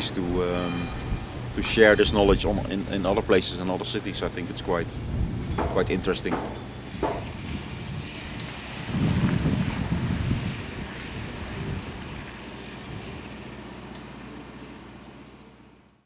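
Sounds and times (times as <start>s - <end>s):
wind gusting on microphone: 0.0s - 13.3s.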